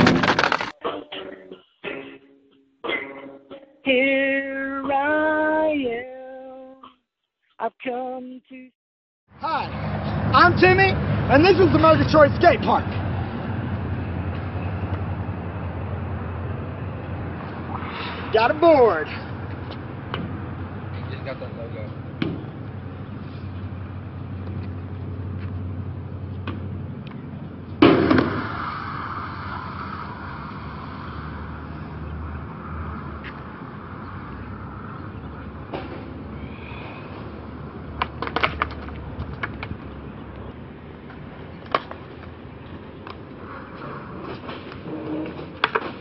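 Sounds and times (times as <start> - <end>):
skateboard hitting ground: 0.0 - 0.8, 27.8 - 28.8, 38.0 - 39.8, 43.8 - 46.0
skateboard wheels rolling on concrete: 0.0 - 1.6, 9.6 - 46.0.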